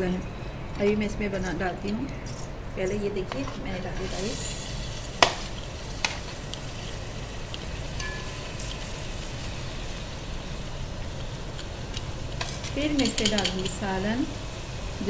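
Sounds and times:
steady hiss: 0:03.8 - 0:15.0.

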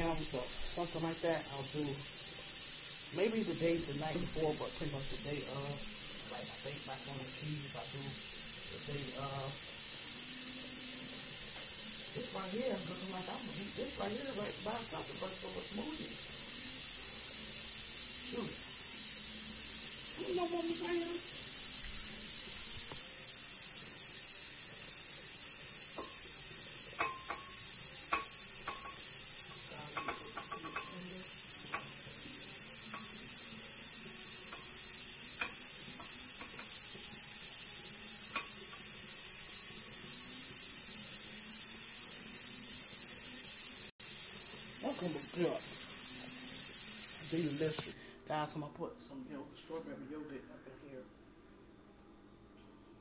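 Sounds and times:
steady high hiss: 0:00.0 - 0:51.1
knife and utensils clinking on dishes: 0:27.0 - 0:31.1.

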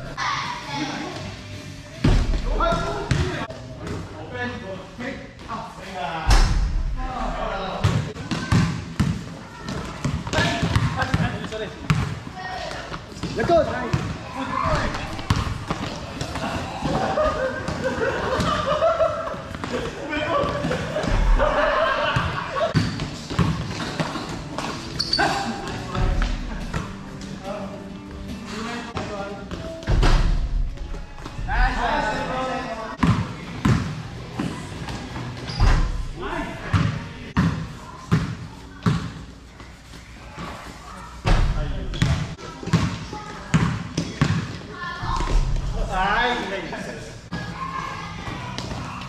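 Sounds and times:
basketball bouncing on court floor: 0:10.0 - 0:11.3, 0:14.8 - 0:16.4, 0:22.8 - 0:24.2, 0:41.9 - 0:44.6.

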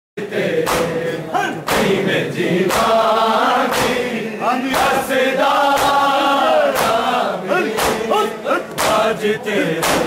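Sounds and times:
men chanting a lament: 0:00.2 - 0:10.0
hand strikes on bare chests: 0:00.6 - 0:02.0, 0:02.6 - 0:03.0, 0:06.7 - 0:09.2, 0:09.8 - 0:10.0.

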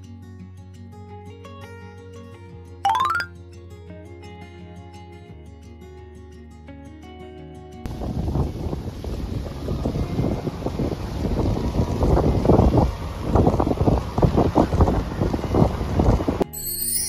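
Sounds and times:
wind buffeting microphone: 0:07.9 - 0:16.4.

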